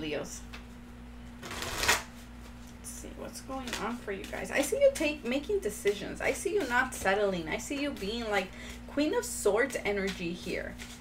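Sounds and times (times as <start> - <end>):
cards being shuffled: 1.4 - 2.7, 10.7 - 11.0.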